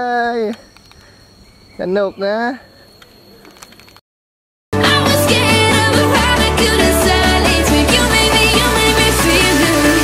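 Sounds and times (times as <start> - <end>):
person calling out: 0.0 - 0.6
insect drone: 0.0 - 4.0
person speaking: 1.8 - 2.8.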